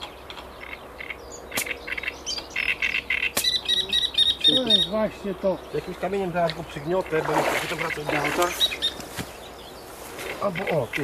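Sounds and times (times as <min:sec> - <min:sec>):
bird chirping and trilling: 0:00.0 - 0:11.0.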